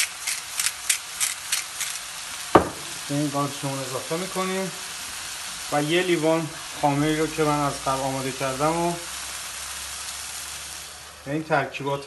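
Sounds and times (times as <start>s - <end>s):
salt shaker shaking: 0.0s - 3.0s
mushrooms sizzling in a pan: 0.0s - 12.0s.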